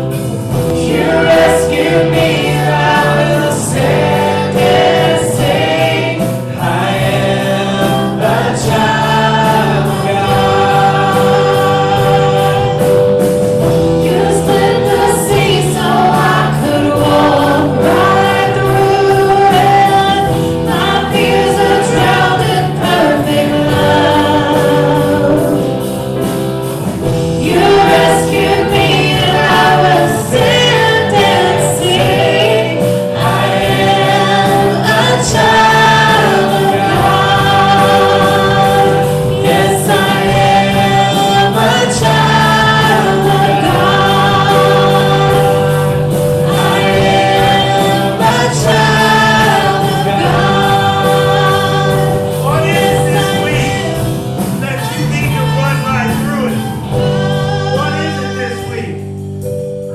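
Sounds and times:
singers: 0.0 - 59.6
bass guitar: 0.0 - 59.9
keyboard: 0.0 - 59.9.

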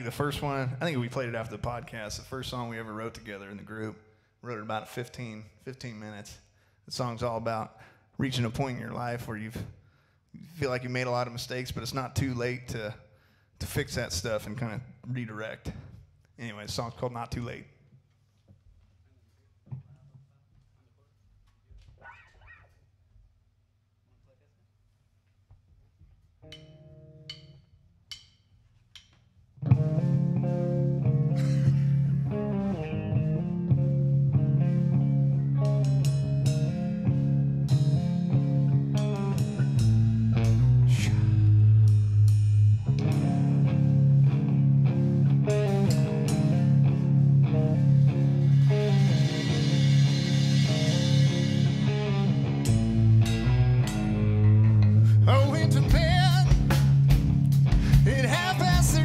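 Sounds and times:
heavy rock band playing: 29.7 - 59.0.

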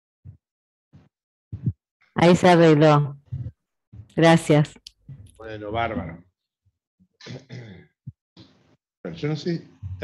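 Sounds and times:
person clearing throat: 7.2 - 7.9.

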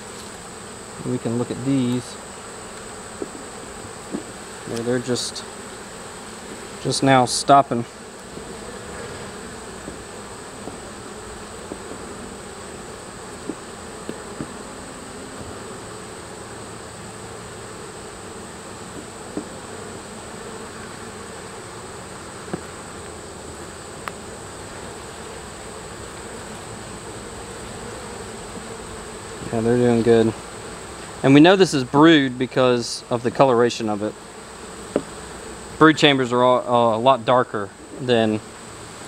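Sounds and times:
honey bees buzzing: 0.0 - 39.0.

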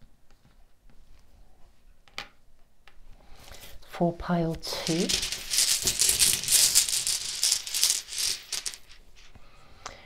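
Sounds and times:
tokens rattling in a pouch: 4.7 - 9.0.

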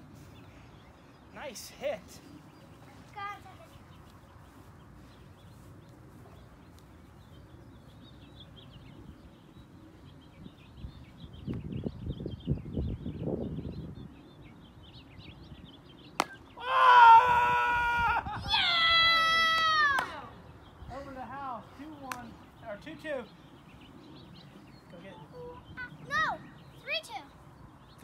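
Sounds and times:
faint birdsong: 0.0 - 28.0
plastic bat hitting ball: 16.2 - 16.4
child screaming excitedly: 16.6 - 20.0.

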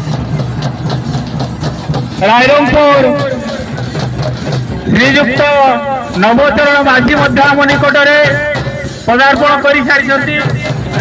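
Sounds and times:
drum music over loudspeakers: 0.0 - 11.0.

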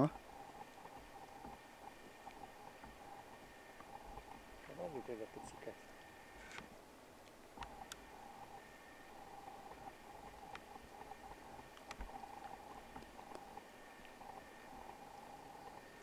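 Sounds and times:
faint wavering high hum: 0.0 - 16.0
sharp clicks: 6.0 - 8.1, 9.4 - 14.4.

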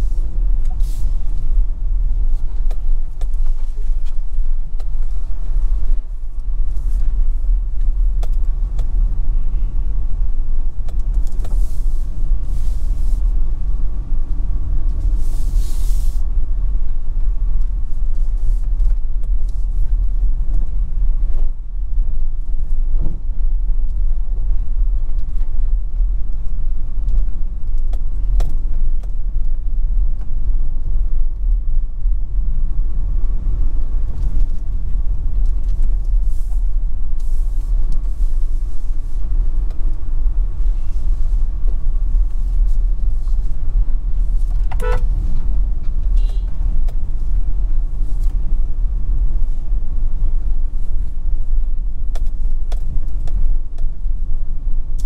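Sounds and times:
car driving on rough road: 0.0 - 55.0.

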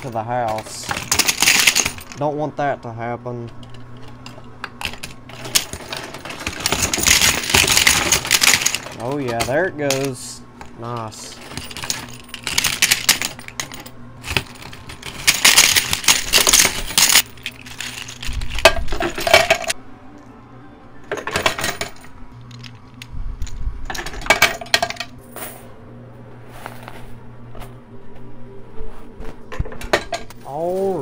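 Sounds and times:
coins and chips clattering: 0.0 - 2.3, 3.4 - 19.8, 21.1 - 25.7
low machine hum: 0.0 - 31.0.

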